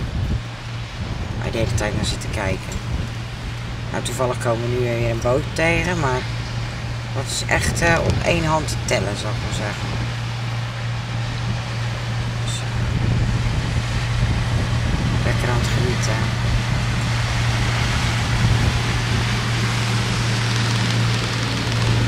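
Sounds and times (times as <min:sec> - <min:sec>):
boat engine drone: 0:00.0 - 0:22.0
rushing water: 0:00.0 - 0:22.0
wind: 0:00.0 - 0:22.0.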